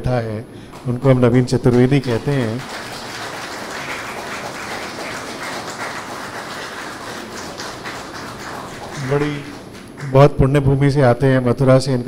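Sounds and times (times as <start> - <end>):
audience applauding: 0.7 - 10.4.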